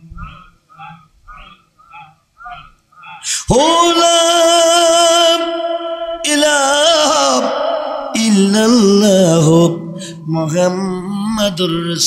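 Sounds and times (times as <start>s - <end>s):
man chanting into microphone: 2.5s - 12.0s.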